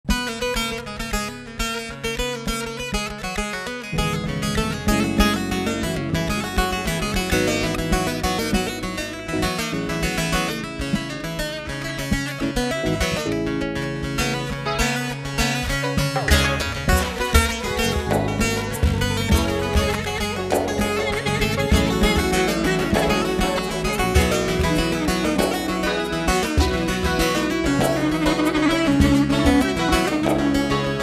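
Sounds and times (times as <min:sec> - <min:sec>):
long-necked lute picked fast: 0:00.2 - 0:31.0
low bass accompaniment: 0:04.0 - 0:14.8, 0:16.0 - 0:31.0.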